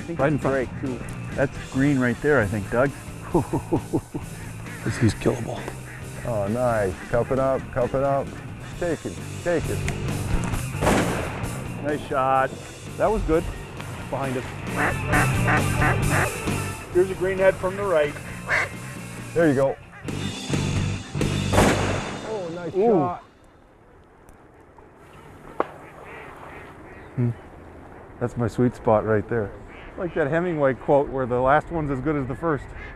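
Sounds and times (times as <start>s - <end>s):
background music: 0.0s - 23.4s
marsh background: 0.0s - 32.9s
shotgun shot with echo: 10.8s - 11.5s, 21.5s - 22.3s
faint duck quacks: 14.7s - 16.8s, 18.2s - 19.0s, 24.5s - 28.1s, 29.6s - 30.3s, 32.6s - 32.9s.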